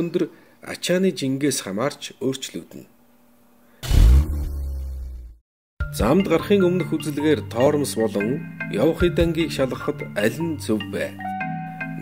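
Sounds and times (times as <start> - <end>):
deep rumble: 3.8 - 5.4.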